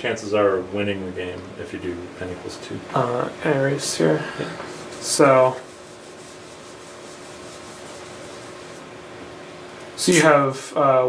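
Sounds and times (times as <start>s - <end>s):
eraser rubbing on whiteboard: 4.6s - 8.9s.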